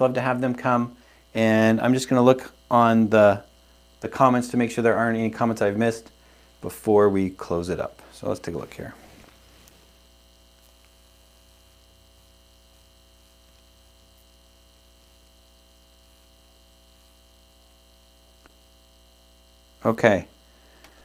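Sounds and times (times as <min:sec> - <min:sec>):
faint electrical mains hum: 0:00.0 - 0:21.0.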